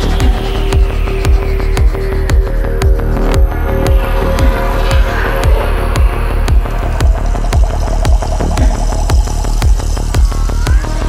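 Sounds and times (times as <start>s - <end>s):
kick drum: 0.0s - 10.4s
deep bass: 0.0s - 11.0s
sustained synth tones: 0.0s - 11.0s.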